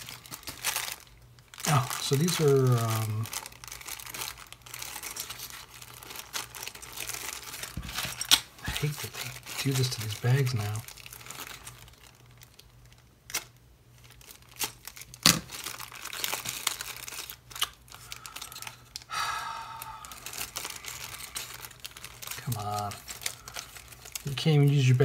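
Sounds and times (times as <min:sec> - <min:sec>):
plastic bag crinkling: 0:00.0 - 0:25.0.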